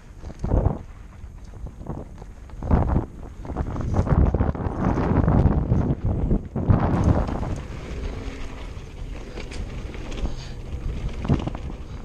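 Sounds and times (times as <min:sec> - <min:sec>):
wind buffeting microphone: 0:00.0 - 0:12.0
bike knocks and rattles: 0:00.2 - 0:12.0.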